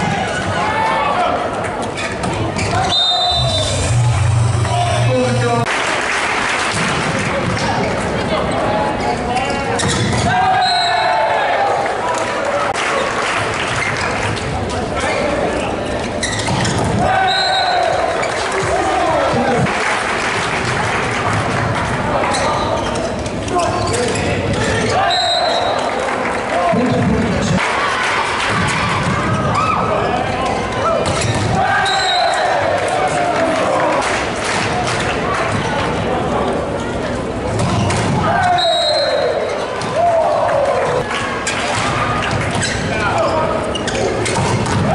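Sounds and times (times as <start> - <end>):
arena crowd noise: 0.0 - 44.9
shoes squeaking on court: 1.7 - 3.3, 7.7 - 10.3, 15.0 - 18.7, 22.2 - 25.6, 41.4 - 44.8
players shouting: 10.2 - 13.1, 16.9 - 20.1, 27.5 - 34.6, 38.0 - 43.8.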